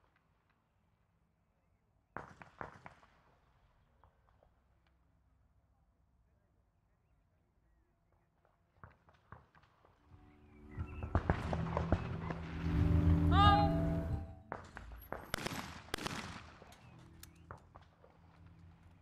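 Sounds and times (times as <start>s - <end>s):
shotgun shots: 14.5s - 17.5s.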